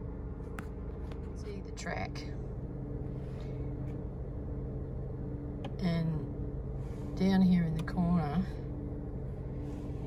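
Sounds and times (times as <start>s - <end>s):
road noise: 0.0s - 10.0s
vehicle engine drone: 0.0s - 10.0s.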